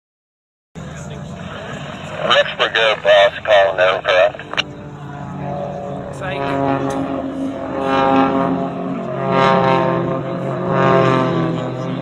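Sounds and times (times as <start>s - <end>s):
aircraft engine droning: 0.8s - 12.0s
person speaking: 2.2s - 4.5s.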